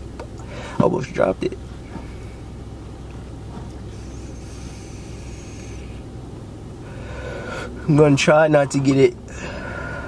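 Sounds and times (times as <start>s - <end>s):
low car hum: 0.0s - 10.0s.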